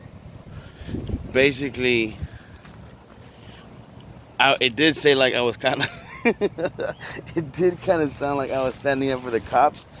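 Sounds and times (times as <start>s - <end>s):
wind rumble on microphone: 0.0s - 2.6s
man talking: 1.3s - 2.3s, 4.4s - 10.0s.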